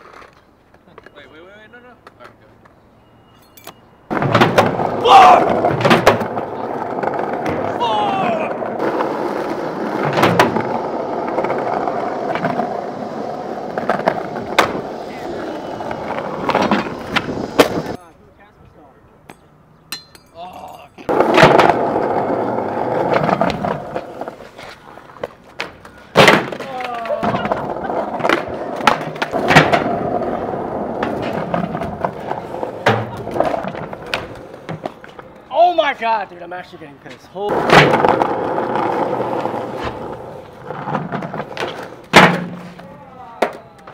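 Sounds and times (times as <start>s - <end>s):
skateboards rolling on stone: 0.0s - 1.4s, 4.1s - 18.0s, 21.1s - 36.2s, 37.1s - 43.9s
skateboard slaps and landings: 4.1s - 15.2s, 21.1s - 24.4s, 25.2s - 35.2s, 37.5s - 43.9s
skateboard sliding on ledge: 4.1s - 18.0s, 21.1s - 35.3s, 37.5s - 43.9s
skateboard tail pops: 10.0s - 10.7s, 13.8s - 14.8s, 25.2s - 27.6s, 28.2s - 30.0s, 37.5s - 38.3s, 40.9s - 43.9s.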